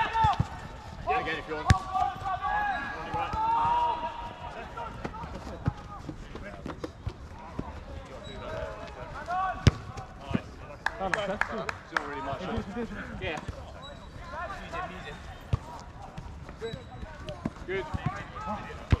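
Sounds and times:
players shouting: 0:00.0 - 0:06.2, 0:07.3 - 0:10.6, 0:14.1 - 0:19.0
football kick thuds: 0:09.6 - 0:10.5.

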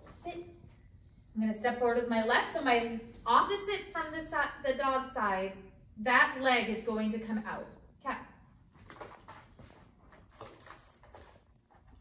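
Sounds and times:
shoe footsteps: 0:08.6 - 0:12.0.

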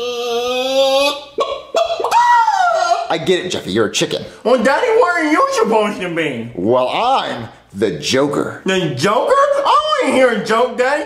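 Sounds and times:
man imitating a chicken: 0:00.0 - 0:03.2.

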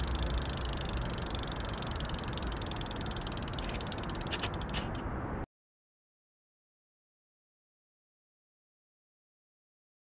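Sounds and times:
bicycle freewheel ticking: 0:00.0 - 0:05.0.

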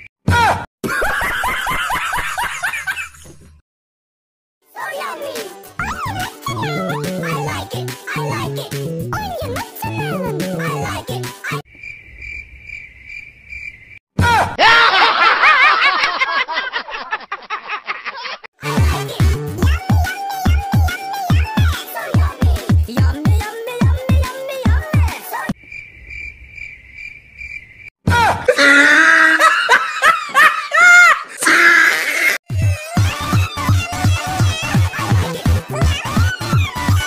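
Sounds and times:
electronic music with wobbling pitches: 0:06.5 - 0:09.2, 0:09.9 - 0:10.9
crickets chirping: 0:11.7 - 0:14.0, 0:25.6 - 0:27.9.

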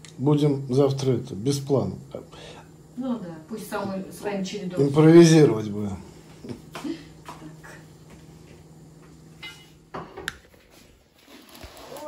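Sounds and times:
steady low hum: 0:00.0 - 0:11.5.

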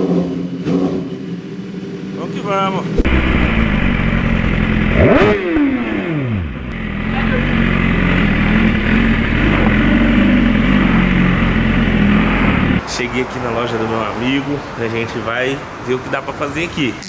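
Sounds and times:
motorcycle engine at low revs: 0:00.0 - 0:02.2, 0:02.9 - 0:12.8
motorcycle engine revving: 0:00.0 - 0:12.8.

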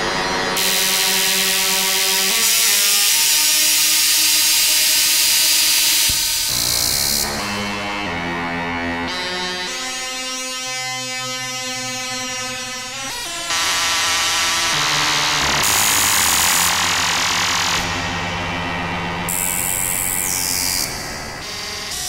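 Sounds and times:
harsh noisy synth buzz: 0:00.0 - 0:22.0.

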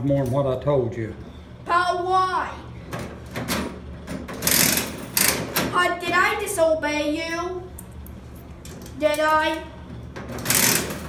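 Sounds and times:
vending machine mechanical rattling: 0:02.7 - 0:11.0.

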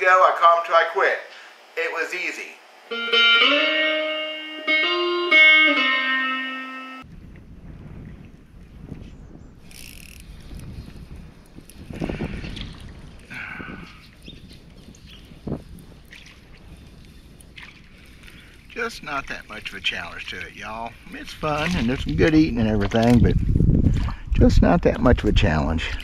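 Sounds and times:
electric guitar ringing notes: 0:02.9 - 0:07.0
kayak on water: 0:07.1 - 0:24.4.

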